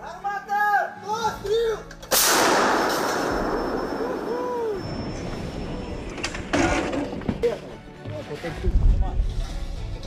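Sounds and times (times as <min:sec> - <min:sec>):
artillery gun blast: 0:02.1 - 0:04.3.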